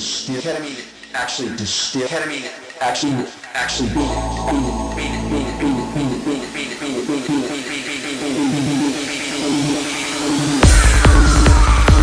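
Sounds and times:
electronic dance music: 0:02.4 - 0:12.0
faint rising sweep: 0:03.7 - 0:07.3.

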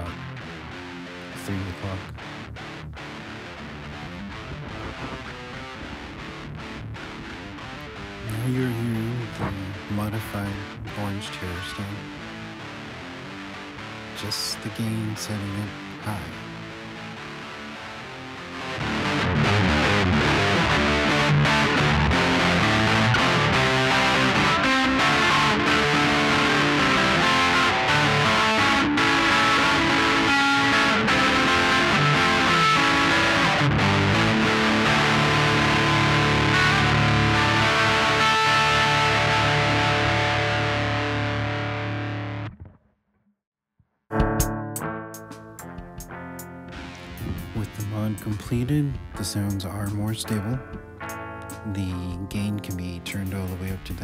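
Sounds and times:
distorted electric guitar riffing: 0:00.0 - 0:42.8, 0:44.1 - 0:54.0.

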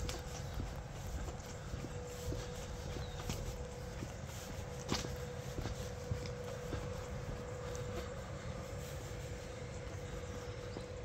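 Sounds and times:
electric train equipment humming: 0:00.0 - 0:11.0.

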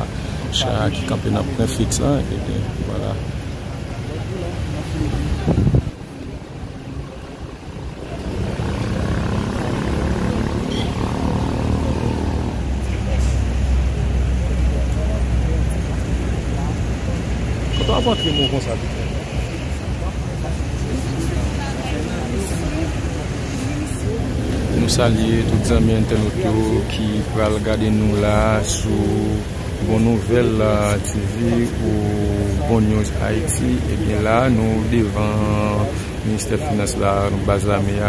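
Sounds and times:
background voices: 0:00.0 - 0:38.0.

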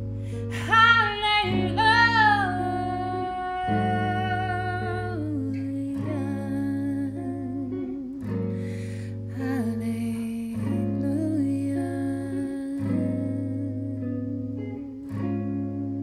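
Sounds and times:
electric guitar playing chords: 0:00.0 - 0:16.0
woman singing with vibrato: 0:00.4 - 0:15.2.

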